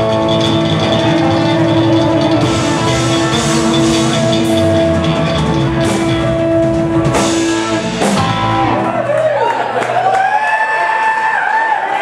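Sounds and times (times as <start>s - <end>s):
electric guitar long note: 0.0s - 9.2s
live rock band playing: 0.0s - 10.3s.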